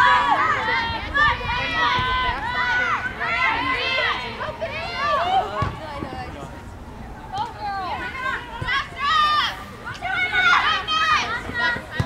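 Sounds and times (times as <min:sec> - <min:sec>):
girls shouting: 0:07.7 - 0:12.0.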